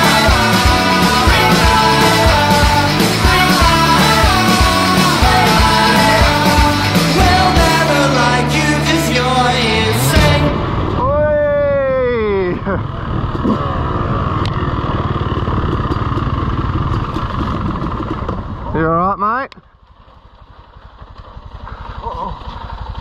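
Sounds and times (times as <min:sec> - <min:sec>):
motorcycle engine running: 0:00.0 - 0:11.0, 0:11.7 - 0:23.0
faint rapid engine pulsing: 0:12.3 - 0:19.0, 0:19.6 - 0:23.0.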